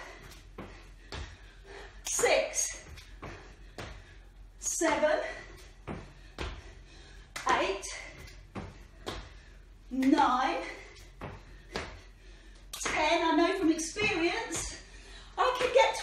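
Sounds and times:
hands and feet thudding on tiles: 7.4s - 12.1s.

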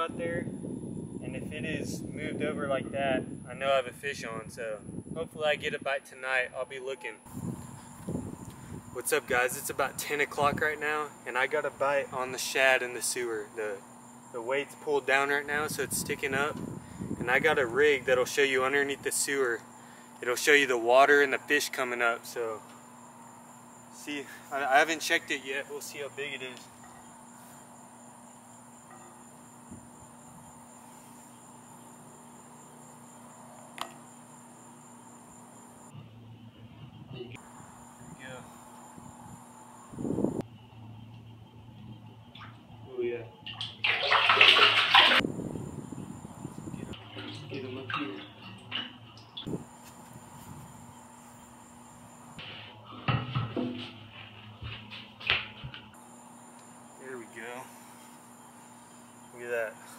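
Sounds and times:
steady background hiss: 0.0s - 36.0s, 55.9s - 59.9s
crickets trilling: 0.0s - 59.9s
sharp knocks and bumps: 52.9s - 55.9s.

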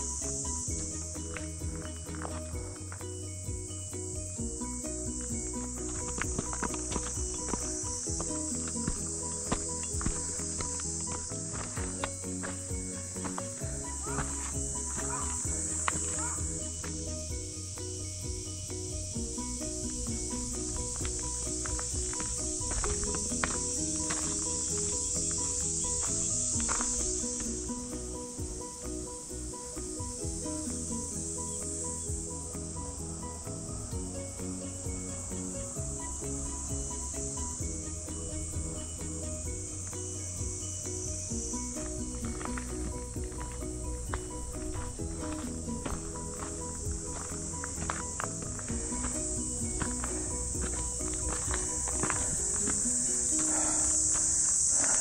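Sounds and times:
background music: 0.0s - 55.0s
cicadas buzzing: 0.0s - 55.0s.

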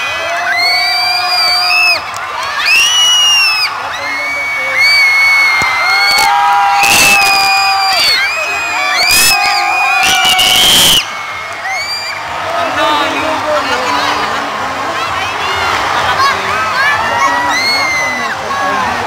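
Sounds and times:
crowd cheering and shouting: 0.0s - 19.0s.

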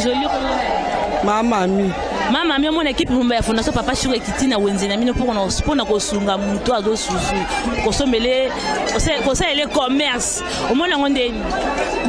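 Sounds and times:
background chatter: 0.0s - 12.0s
woman speaking into a microphone: 1.2s - 11.5s.

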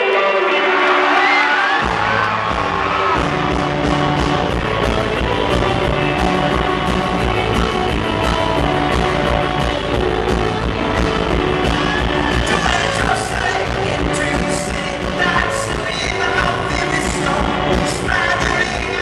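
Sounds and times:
electric guitar riff: 0.0s - 19.0s
live rock band playing: 0.0s - 19.0s
drums and bass guitar beat: 1.7s - 19.0s.

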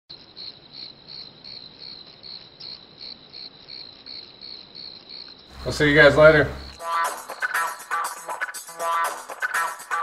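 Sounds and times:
crickets chirping: 0.1s - 8.7s.

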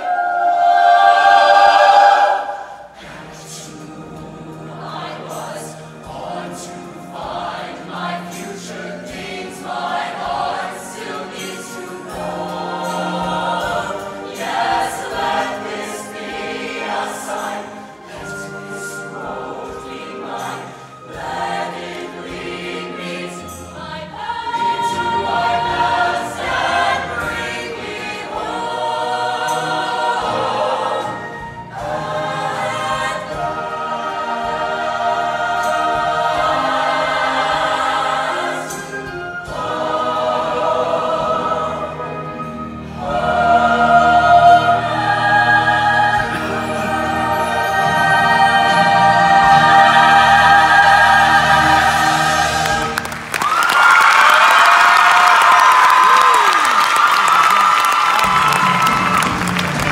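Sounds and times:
choir singing in harmony: 0.0s - 59.9s.

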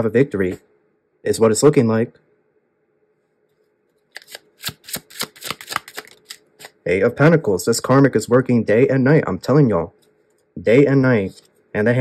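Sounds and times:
cards being shuffled: 4.0s - 6.8s
card flicks and snaps: 4.1s - 6.8s.

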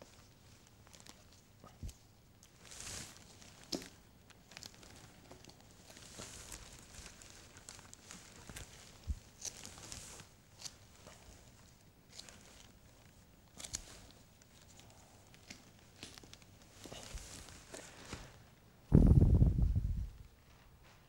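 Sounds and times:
plastic and straps rustling: 0.0s - 18.6s.

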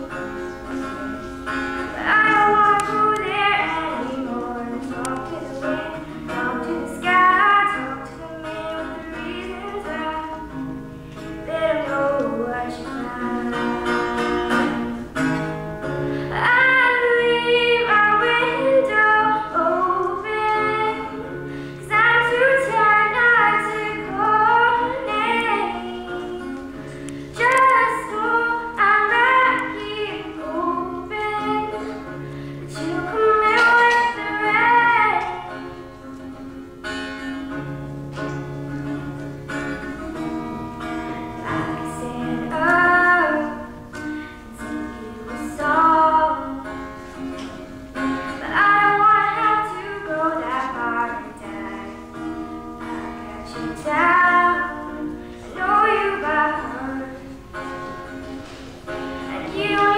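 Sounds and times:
girl singing: 0.0s - 15.0s, 16.2s - 36.6s, 38.8s - 59.9s
acoustic guitar chords: 0.0s - 59.9s.

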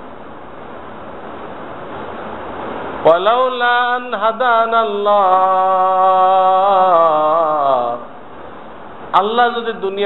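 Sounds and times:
steady rushing noise: 0.0s - 6.5s.

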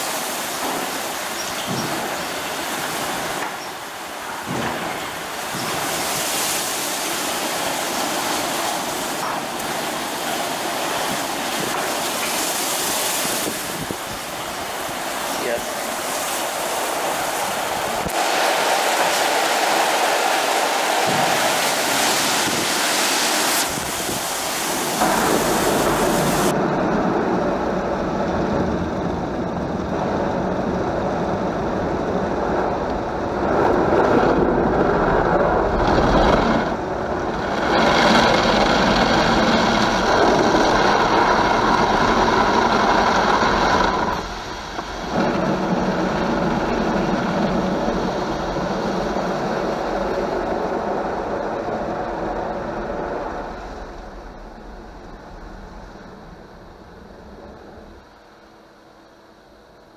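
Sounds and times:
car wash water spray: 0.0s - 26.6s, 35.7s - 54.1s
car wash brushes spinning: 35.7s - 51.0s.

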